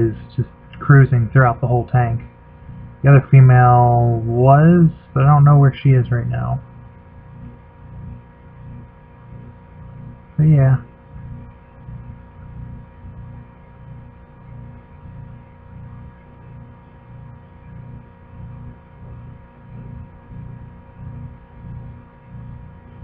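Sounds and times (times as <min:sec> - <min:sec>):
throbbing low hum: 0:00.0 - 0:23.0.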